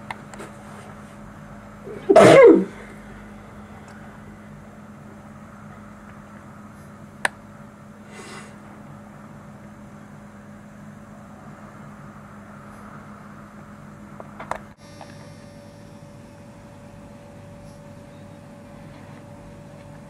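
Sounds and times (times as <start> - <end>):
steady low hum: 0.0 - 20.0
faint high steady tone: 14.8 - 18.9.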